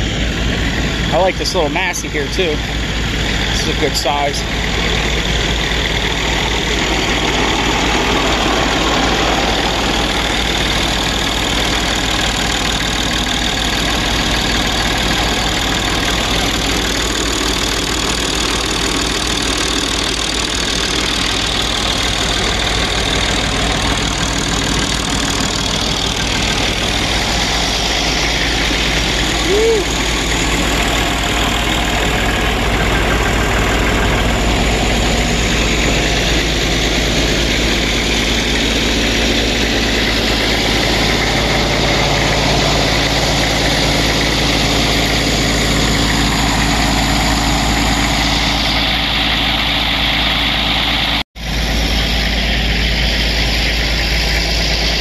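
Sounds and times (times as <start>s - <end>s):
engine idling: 0.0s - 55.0s.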